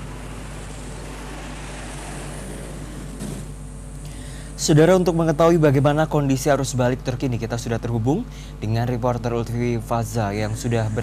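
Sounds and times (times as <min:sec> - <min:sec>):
passing vehicle swish: 0:00.0 - 0:03.9
road traffic passing: 0:00.0 - 0:08.6.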